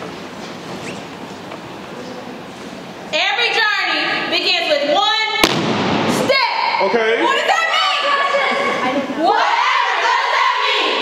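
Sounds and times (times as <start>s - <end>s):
sharp percussive hit: 5.4s - 6.2s.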